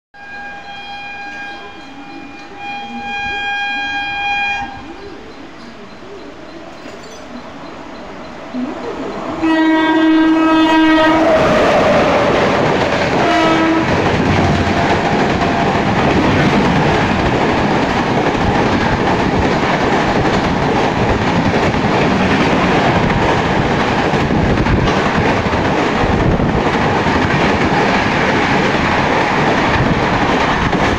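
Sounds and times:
locomotive horn blasts: 0:00.2 - 0:05.1, 0:09.4 - 0:11.4, 0:13.2 - 0:14.1
train coaches passing clickety-clack: 0:00.2 - 0:30.9.

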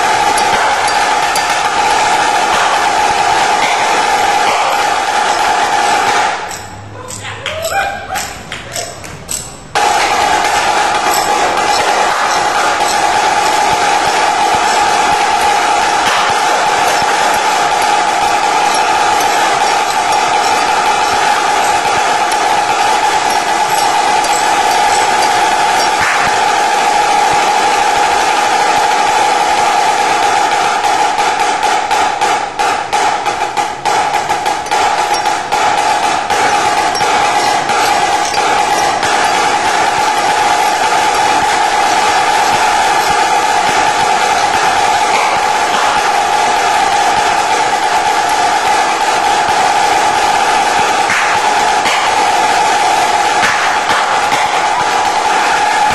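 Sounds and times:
snare drum rolls: 0:00.0 - 0:06.7, 0:09.7 - 0:55.9.

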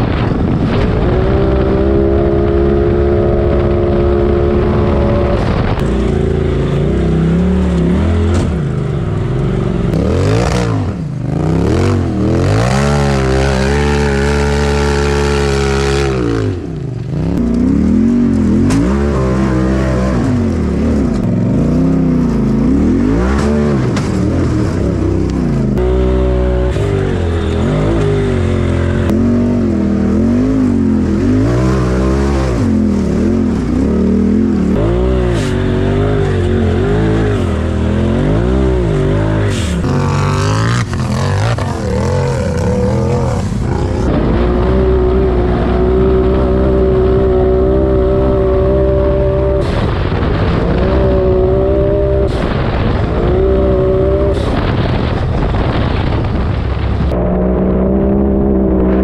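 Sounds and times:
utv engine revving: 0:00.0 - 0:59.0.

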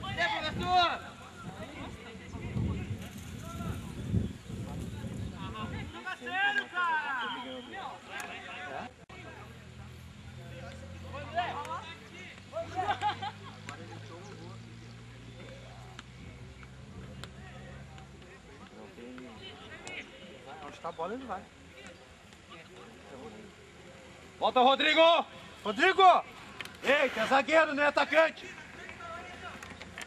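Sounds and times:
voices shouting and calling: 0:00.0 - 0:30.0.

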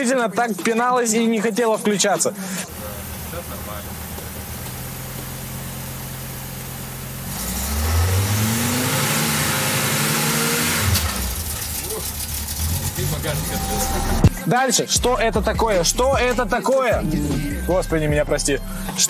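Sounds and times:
car engine idling and revving: 0:02.7 - 0:14.4.

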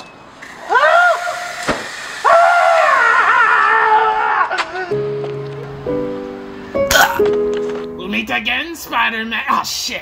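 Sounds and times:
person screaming: 0:00.7 - 0:01.6, 0:02.2 - 0:05.0.

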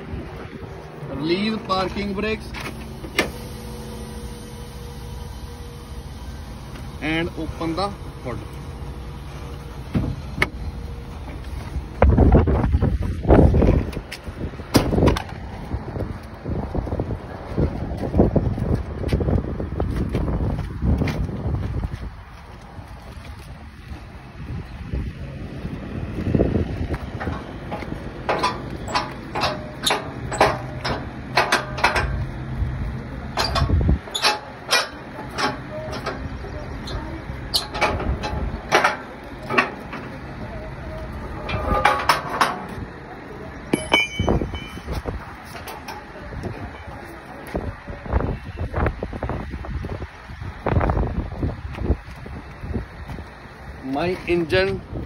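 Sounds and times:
wind noise on microphone: 0:00.0 - 0:01.1, 0:09.8 - 0:10.7, 0:11.3 - 0:34.3, 0:35.4 - 0:38.8, 0:43.8 - 0:55.0.

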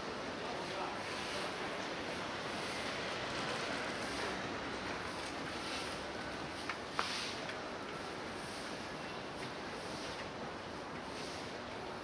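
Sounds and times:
distant traffic and street noise: 0:00.0 - 0:12.0.

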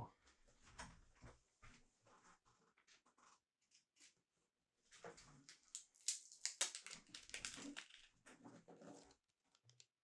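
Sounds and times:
plastic packet crinkling: 0:05.7 - 0:08.1.

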